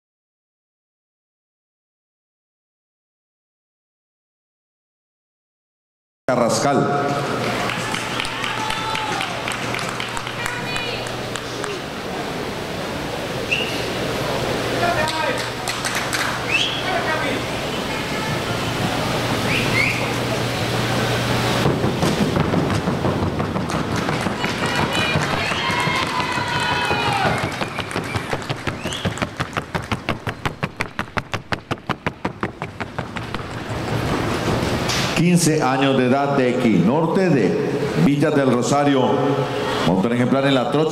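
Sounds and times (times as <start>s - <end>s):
crowd voices and chatter: 6.3s - 40.9s
hooves striking board track: 21.6s - 35.1s.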